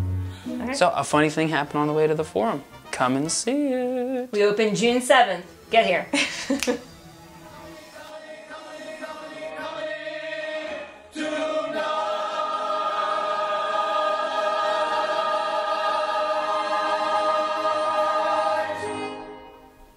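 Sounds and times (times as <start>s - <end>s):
choir singing with music: 0.0s - 19.9s.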